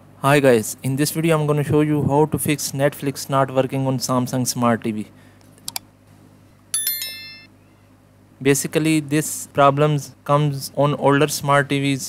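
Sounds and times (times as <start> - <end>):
bright bell ding: 6.7 - 7.5.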